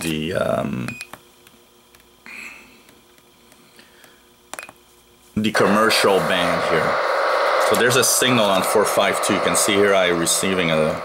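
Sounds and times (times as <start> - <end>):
burst of radio noise: 5.5 - 11.0.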